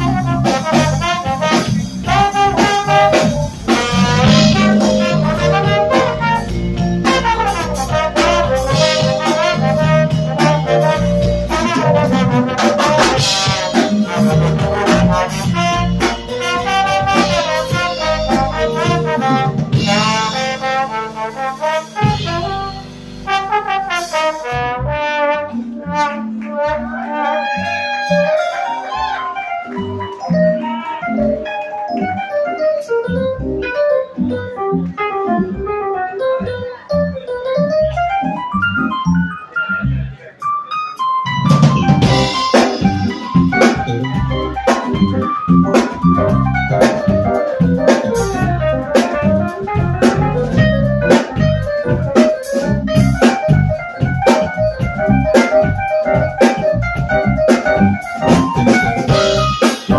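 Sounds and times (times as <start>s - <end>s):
trombone solo: 0.0s - 29.4s, 42.0s - 59.9s
electric keyboard accompaniment: 0.0s - 59.9s.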